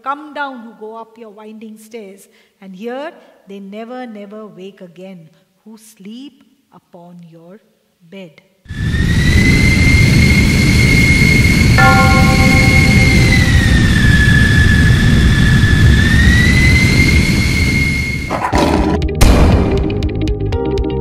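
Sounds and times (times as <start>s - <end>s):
high turbine whine: 8.7s - 18.3s
jet engine roar: 8.7s - 18.4s.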